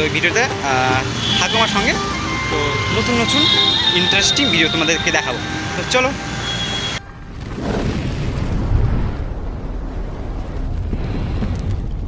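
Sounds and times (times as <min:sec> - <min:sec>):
man talking: 0:00.0 - 0:06.2
low rumble of street traffic: 0:00.0 - 0:07.8.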